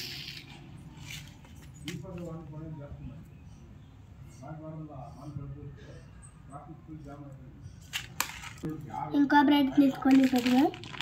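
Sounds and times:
child speaking: 0:09.1 - 0:10.8.

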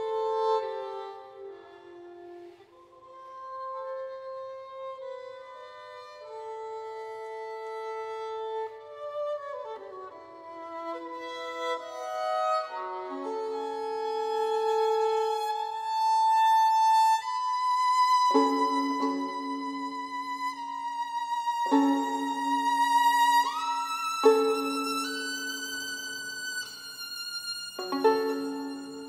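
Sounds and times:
solo violin bowed: 0:00.0 - 0:29.0.

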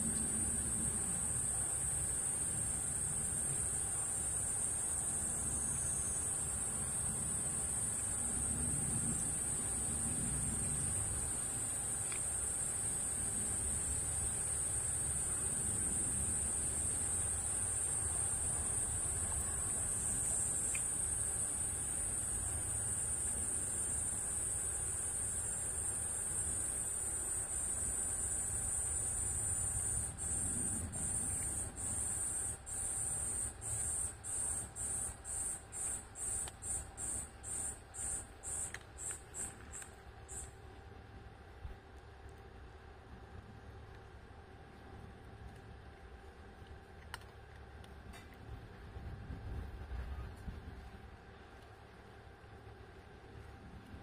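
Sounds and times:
cicada buzzing: 0:00.4 - 0:40.5.

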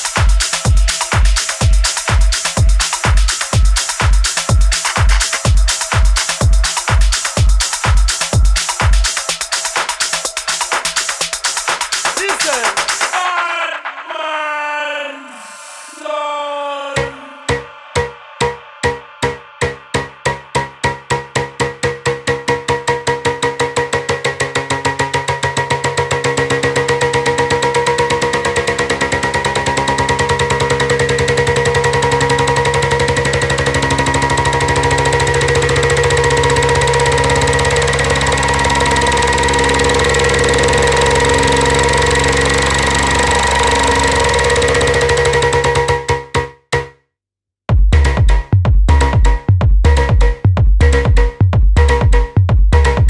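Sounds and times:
pulsing drum roll: 0:00.0 - 0:14.3, 0:29.7 - 0:46.1
house music build-up: 0:00.0 - 0:14.9, 0:15.8 - 0:46.2, 0:47.7 - 0:53.0.

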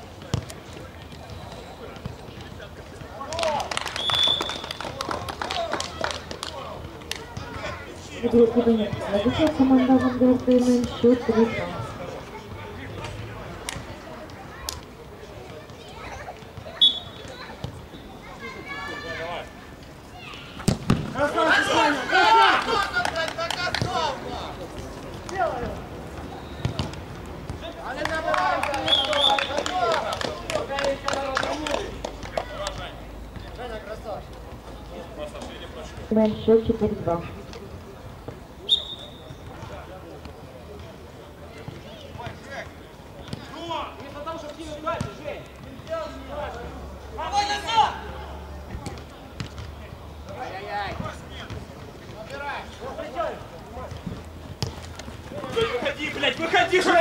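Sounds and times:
referee's whistle: 0:04.0 - 0:04.8, 0:16.8 - 0:18.2, 0:26.3 - 0:26.8, 0:28.8 - 0:29.6, 0:38.6 - 0:39.4
players shouting: 0:16.7 - 0:26.7, 0:27.5 - 0:33.0, 0:46.0 - 0:48.4, 0:55.3 - 0:57.0
football being kicked: 0:20.6 - 0:21.2.

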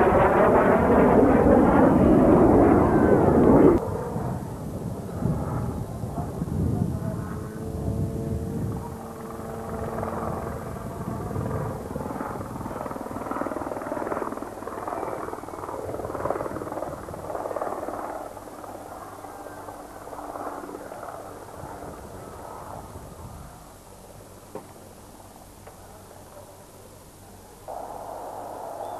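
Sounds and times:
helicopter flying overhead: 0:00.0 - 0:24.2, 0:27.7 - 0:28.9.

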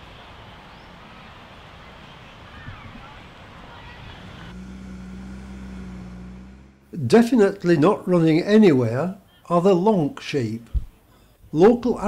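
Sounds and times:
low engine hum: 0:00.0 - 0:08.2
faint distant voices: 0:00.2 - 0:04.6.

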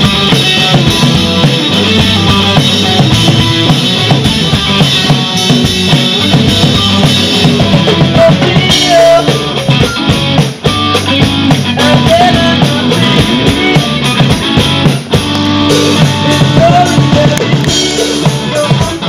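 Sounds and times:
drum kit: 0:00.0 - 0:19.0
guitar: 0:00.0 - 0:19.0.

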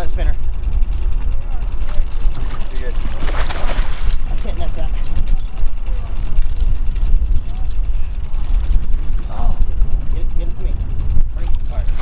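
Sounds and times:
boat engine low rumble: 0:00.0 - 0:12.0.

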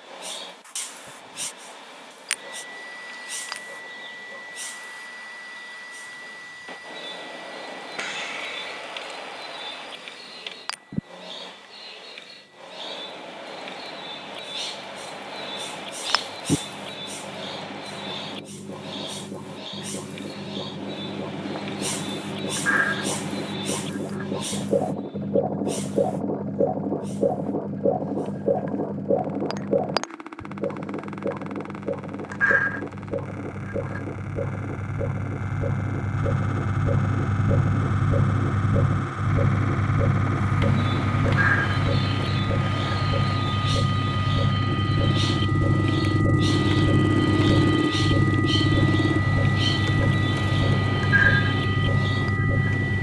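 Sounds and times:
background hiss: 0:00.0 - 0:03.8
high-pitched electronic tone: 0:02.4 - 0:08.7, 0:16.4 - 0:53.0
steady low hum: 0:13.3 - 0:53.0
rhythmic pulse: 0:16.4 - 0:53.0
sharp clicks: 0:27.8 - 0:52.9.

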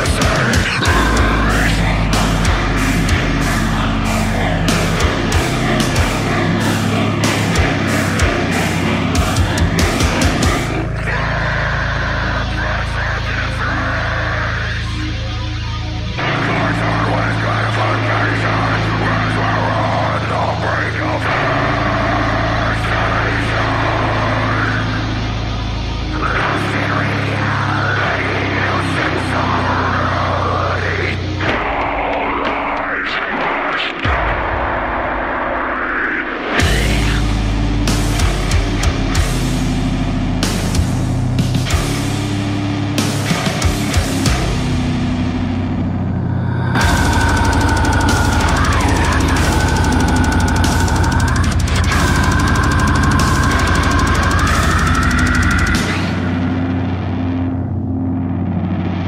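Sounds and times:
blast-beat drumming: 0:00.0 - 0:11.0, 0:46.8 - 0:56.5
harsh wordless vocals: 0:00.0 - 0:42.3, 0:43.1 - 0:57.7
distorted heavy metal guitar: 0:00.0 - 0:59.0.

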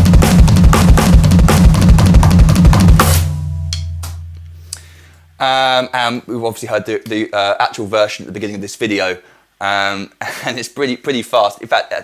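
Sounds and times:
electronic drum solo: 0:00.0 - 0:04.7.

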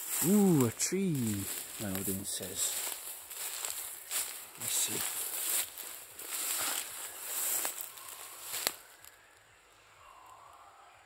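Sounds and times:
footsteps swishing through grass: 0:00.0 - 0:08.8.

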